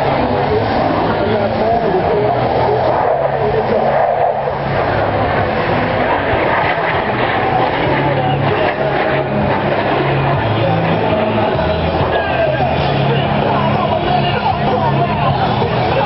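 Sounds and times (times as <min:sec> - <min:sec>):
jet engines roaring overhead: 0:00.0 - 0:16.0
voices: 0:00.0 - 0:16.0.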